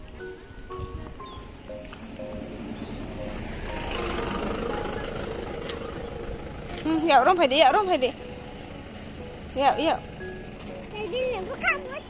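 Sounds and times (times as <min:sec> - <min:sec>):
motor vehicle passing: 0:00.0 - 0:12.0.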